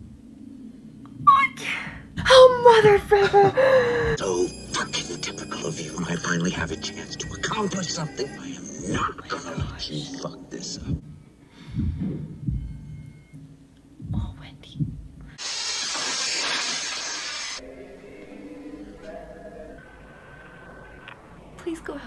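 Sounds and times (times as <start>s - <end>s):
sustained tones: 3.8s - 13.4s, 17.6s - 22.0s
low heavy thumps: 9.0s - 9.9s, 10.8s - 12.9s, 14.0s - 15.2s
loud rush of hissing noise: 15.4s - 18.2s.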